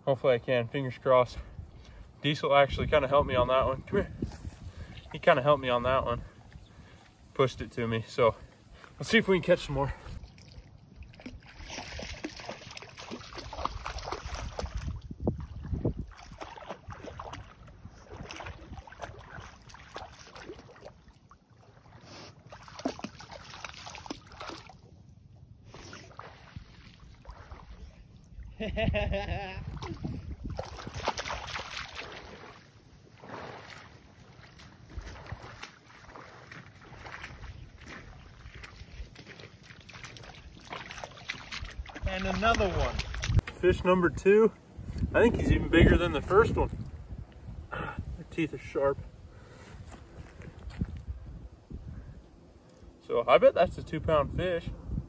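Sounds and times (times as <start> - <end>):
person wading through water: 1.4 - 28.7, 29.3 - 45.1
wind on microphone: 2.7 - 5.2, 13.4 - 19.5, 27.8 - 31.5, 41.5 - 43.5, 44.1 - 48.3, 49.0 - 52.3, 53.7 - 55.0
water sloshing and splashing: 2.9 - 28.6, 29.5 - 44.0
dog splashing through water: 10.2 - 24.9, 29.7 - 43.4.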